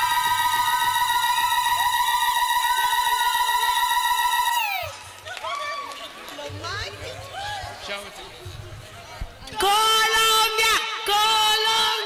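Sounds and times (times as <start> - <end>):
faint crowd voices: 0.0 - 12.0.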